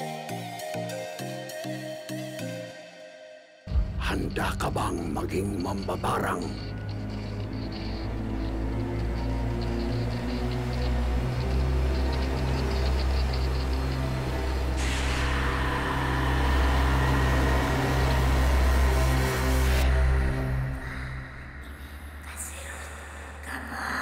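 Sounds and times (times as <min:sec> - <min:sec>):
low droning bass: 0:03.7 - 0:21.0
loud hissing noise: 0:12.6 - 0:19.8.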